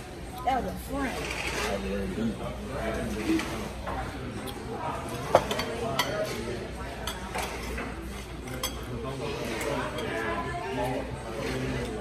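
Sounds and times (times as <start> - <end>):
cutlery clinking on plates: 3.0 - 12.0.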